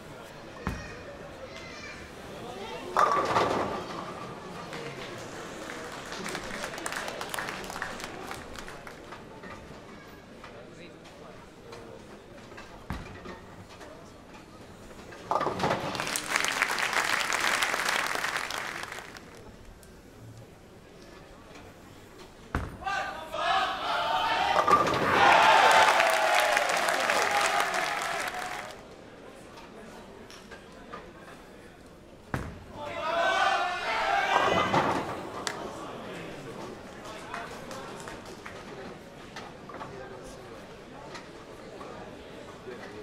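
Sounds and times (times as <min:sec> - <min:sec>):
crowd applauding: 0:04.6 - 0:09.1, 0:15.8 - 0:19.5, 0:24.9 - 0:28.8
bowling pins crashing: 0:24.5 - 0:25.8.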